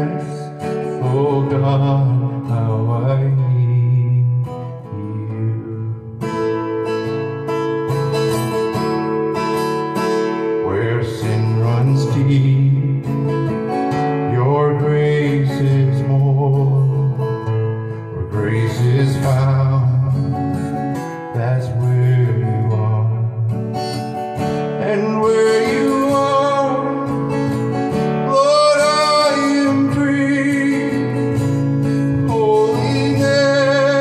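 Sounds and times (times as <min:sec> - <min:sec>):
man singing: 0:00.0 - 0:06.6, 0:10.4 - 0:34.0
strummed acoustic guitar: 0:00.0 - 0:34.0.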